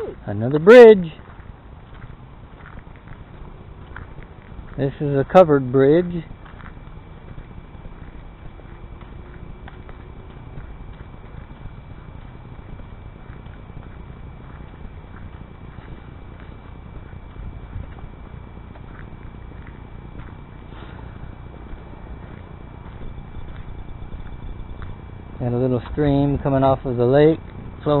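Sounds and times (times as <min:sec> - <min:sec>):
footsteps on sandy dirt path: 0:00.0 - 0:28.0
low steady rumble: 0:00.0 - 0:28.0.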